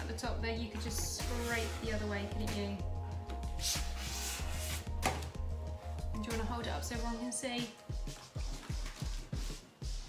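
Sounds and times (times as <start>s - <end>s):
background music with bass line: 0.0s - 10.0s
ruler scraping foam off paper: 3.6s - 4.9s.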